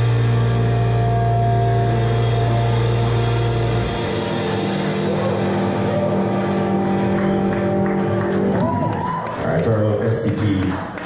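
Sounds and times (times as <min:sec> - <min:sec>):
low bass note: 0:00.0 - 0:08.8.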